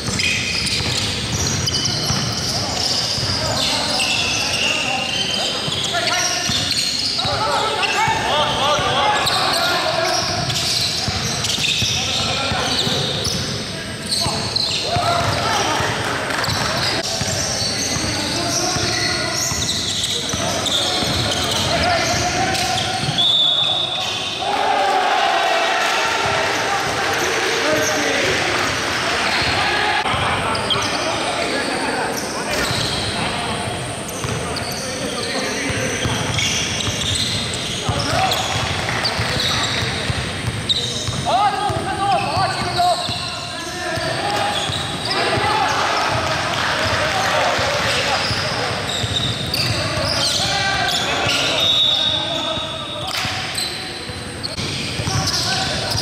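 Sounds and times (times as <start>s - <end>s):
players calling out: 0.0s - 56.0s.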